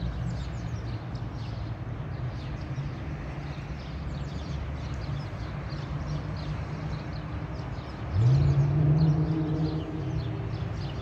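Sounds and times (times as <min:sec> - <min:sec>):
low traffic rumble: 0:00.0 - 0:11.0
small birds chirping: 0:00.0 - 0:11.0
vehicle engine accelerating: 0:07.7 - 0:11.0.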